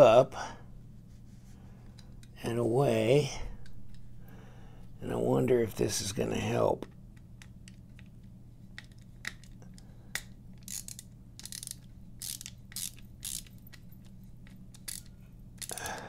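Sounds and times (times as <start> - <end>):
steady low hum: 0.0 - 16.0
knife parts clicking and scraping: 7.4 - 16.0.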